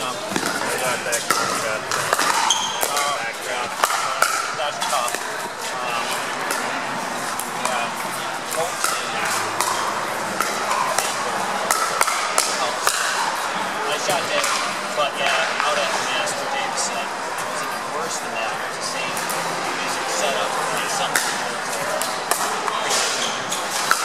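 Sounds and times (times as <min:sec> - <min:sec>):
paddles hitting plastic ball: 0:00.0 - 0:15.9
crowd chatter: 0:00.0 - 0:24.0.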